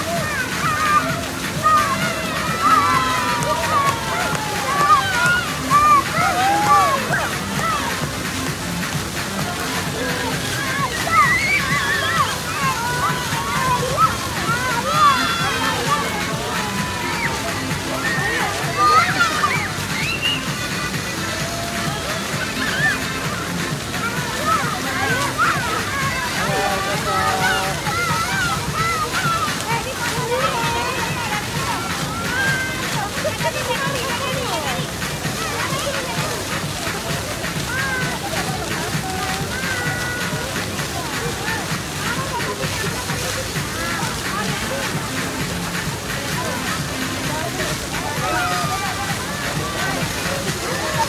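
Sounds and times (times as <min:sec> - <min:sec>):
high-pitched voices calling out: 0:00.0 - 0:08.1, 0:09.4 - 0:51.0
fountain water splashing: 0:00.0 - 0:51.0
music playing: 0:00.0 - 0:51.0
people chattering: 0:00.0 - 0:51.0.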